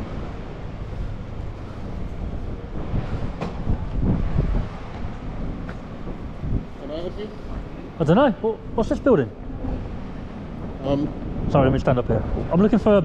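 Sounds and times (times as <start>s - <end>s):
low rumble of vehicles: 0.0s - 13.0s
wind buffeting microphone: 0.0s - 13.0s.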